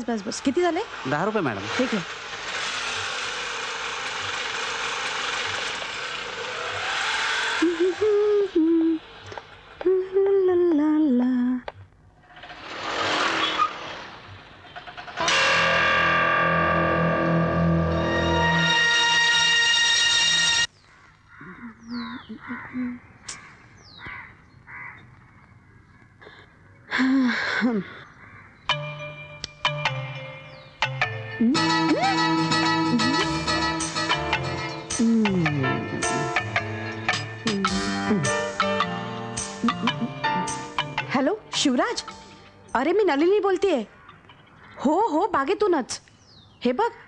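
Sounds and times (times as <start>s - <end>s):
film music: 15.2s - 20.7s, 28.7s - 43.4s
crows cawing: 20.8s - 26.1s, 28.1s - 28.7s, 43.9s - 44.9s
held melodic tone: 28.7s - 43.4s.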